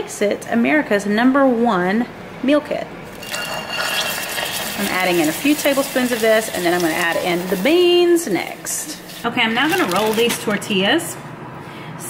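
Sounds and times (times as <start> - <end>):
beans pouring into pot: 3.1 - 7.9
sizzling in hot oil: 3.1 - 10.3.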